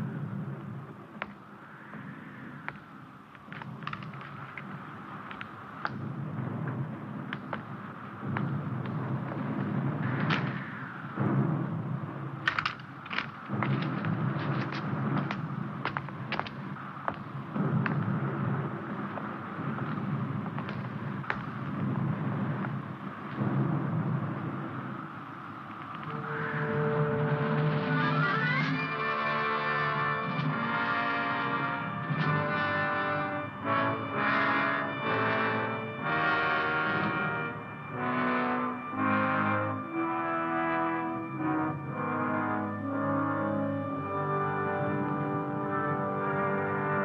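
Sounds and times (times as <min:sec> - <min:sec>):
continuous rumble: 0:00.0 - 0:47.0
film music: 0:00.0 - 0:47.0.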